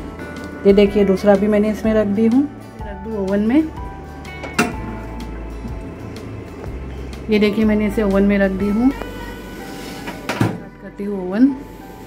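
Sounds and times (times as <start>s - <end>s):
oven door latching shut: 4.4s - 4.9s.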